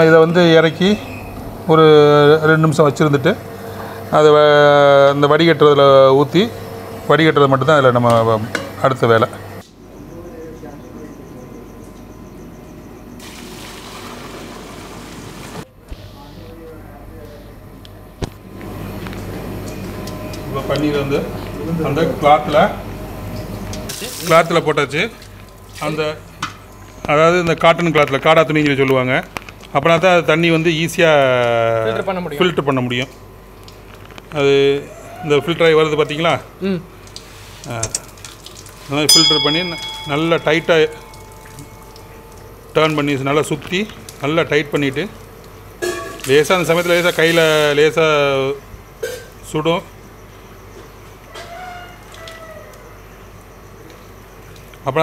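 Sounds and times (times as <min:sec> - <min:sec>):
liquid gushing from a pot: 0:13.2 - 0:15.6, 0:37.0 - 0:39.1, 0:46.1 - 0:47.8
bell chime: 0:39.1 - 0:42.4.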